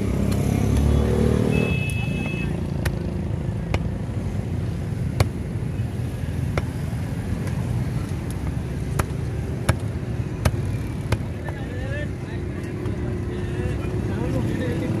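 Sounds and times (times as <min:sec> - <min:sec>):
cleaver chopping fish on wood: 0:02.8 - 0:04.2, 0:05.0 - 0:05.6, 0:06.4 - 0:11.6.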